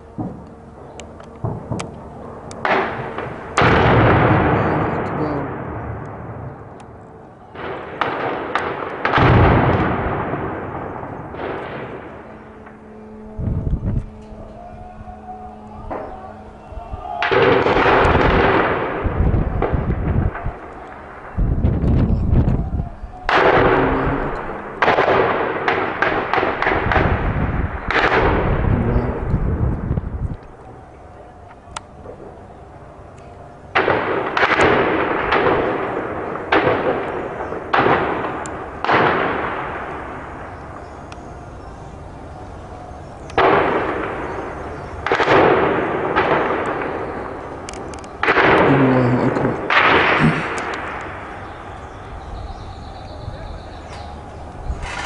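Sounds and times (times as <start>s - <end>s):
low rumble: 0.0s - 34.2s
tank shell booms echoing: 2.6s - 6.4s, 7.6s - 12.8s, 23.3s - 29.3s, 33.8s - 40.1s, 43.4s - 47.3s, 48.2s - 51.3s
loud gun reports with echo: 22.8s - 29.3s, 48.2s - 51.0s.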